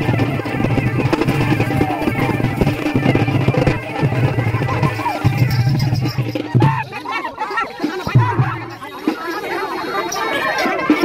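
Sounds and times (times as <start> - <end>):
crowd talking and calling out: 0.0 - 11.0
folk music: 0.0 - 11.0.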